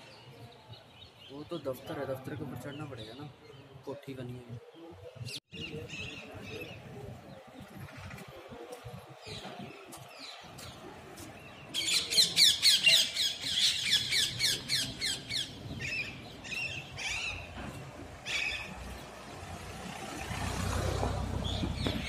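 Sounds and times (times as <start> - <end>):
birds high-pitched calls: 11.4 - 19.1.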